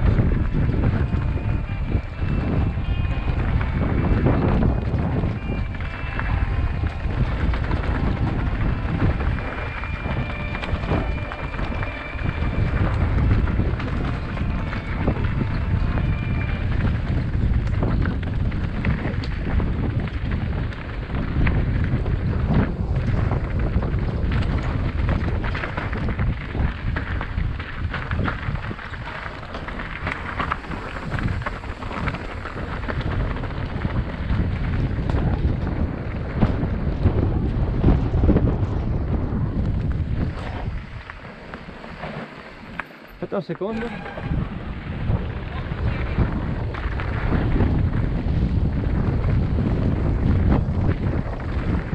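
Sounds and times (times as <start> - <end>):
tyres crunching over stones: 0.0 - 36.9
bike rattling and clattering: 0.0 - 51.9
wind buffeting microphone: 0.0 - 51.9.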